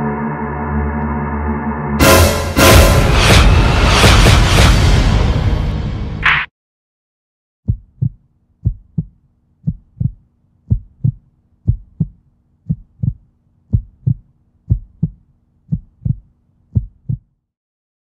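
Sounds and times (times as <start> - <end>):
heartbeat thumps: 7.7 - 17.3.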